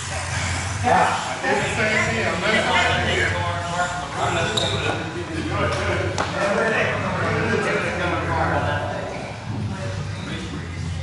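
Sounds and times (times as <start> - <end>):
indistinct voices talking: 0.0 - 11.0.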